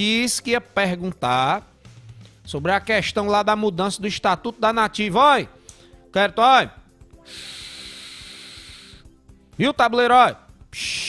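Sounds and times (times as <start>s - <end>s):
faint background music: 0.0s - 11.0s
steady hiss: 7.3s - 9.1s.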